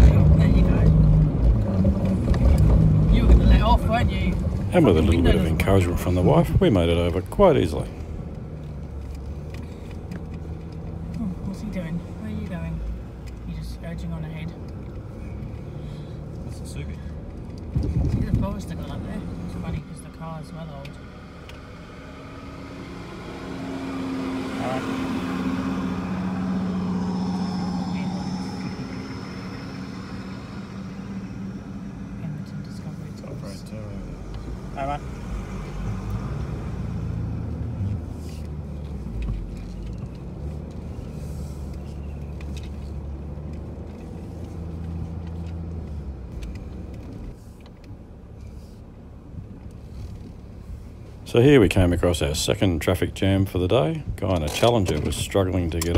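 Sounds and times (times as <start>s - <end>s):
engine running at low speed: 14.5s - 55.9s.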